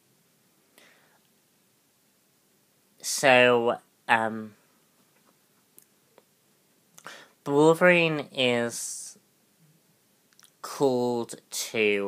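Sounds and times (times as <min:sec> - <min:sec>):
faint breathy sound: 0:00.6 - 0:01.3, 0:07.0 - 0:07.4.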